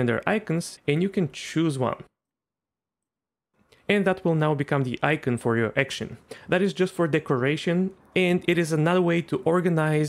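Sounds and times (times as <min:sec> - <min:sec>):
person speaking: 0:00.0 - 0:02.1, 0:03.7 - 0:10.0.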